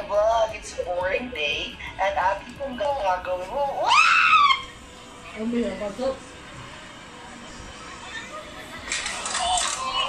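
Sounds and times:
high-pitched scream: 3.8s - 4.8s.

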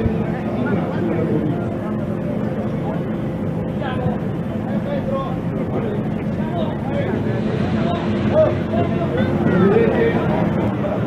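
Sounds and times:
inflation fans humming: 0.0s - 11.0s.

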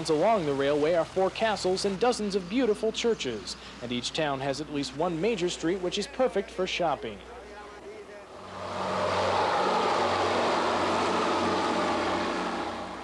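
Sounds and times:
diesel railcar passing: 0.0s - 5.8s, 8.2s - 13.0s.

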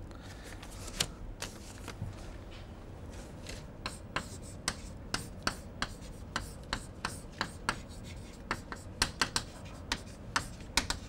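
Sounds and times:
chalk scratching: 3.8s - 11.0s
chalk tapping on chalkboard: 3.8s - 11.0s.

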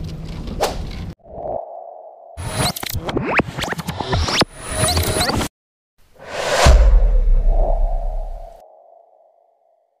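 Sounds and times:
deep rumble: 6.3s - 8.9s.

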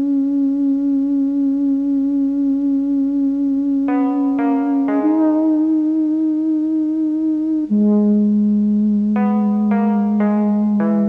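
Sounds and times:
long held instrumental note: 3.9s - 11.0s.

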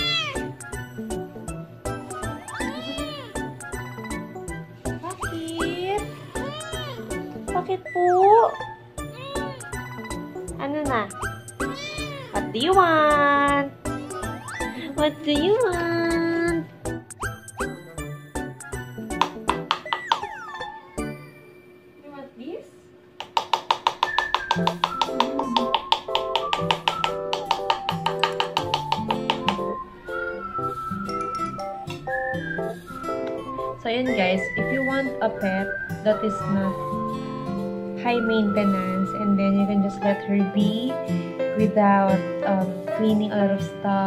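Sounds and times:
cat meowing: 0.0s - 0.6s, 2.1s - 3.5s, 6.2s - 7.2s, 9.0s - 9.8s, 11.6s - 12.5s, 14.2s - 14.8s
background music with steady beat: 0.0s - 7.7s, 8.7s - 20.3s, 23.2s - 44.0s.

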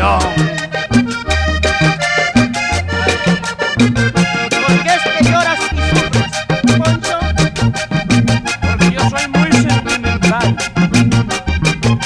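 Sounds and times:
button accordion melody: 0.0s - 12.0s
percussion beat: 0.0s - 12.0s
pulsing bass line: 0.0s - 12.0s.

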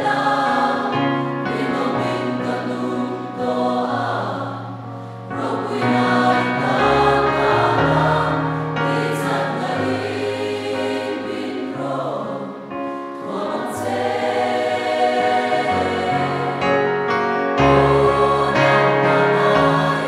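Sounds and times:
congregation singing a hymn: 0.0s - 20.0s
keyboard accompaniment: 0.0s - 20.0s.

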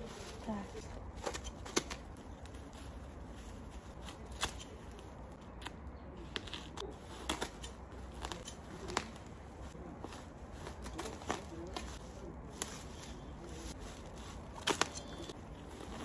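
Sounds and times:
plastic crinkling and tearing: 0.0s - 16.0s
scissors snipping plastic: 4.1s - 9.3s, 14.4s - 16.0s.

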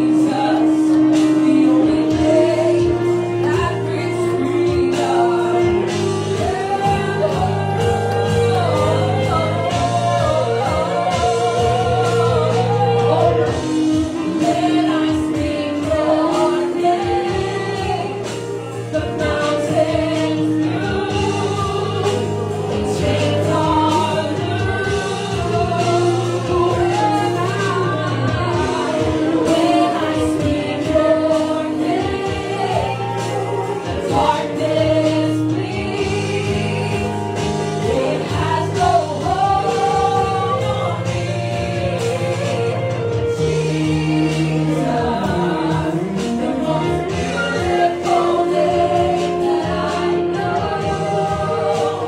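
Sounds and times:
congregation singing worship song: 0.0s - 52.0s
instrumental accompaniment: 0.0s - 52.0s
sustained bass notes: 0.0s - 52.0s.

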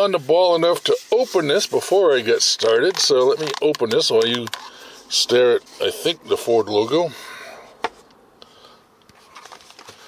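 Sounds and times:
food containers clicking and rustling: 2.8s - 4.7s, 9.1s - 10.0s.

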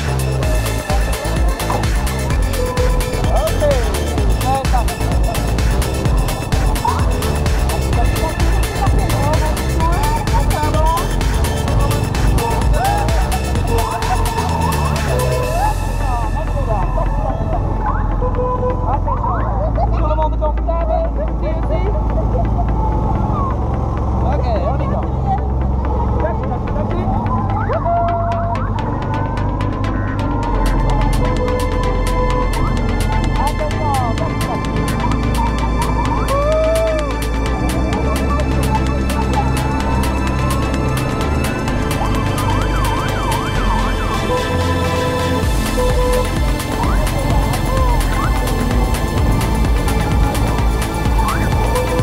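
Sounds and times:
background music: 0.0s - 52.0s
people's voices: 0.0s - 52.0s
siren wailing up and down: 27.2s - 52.0s.

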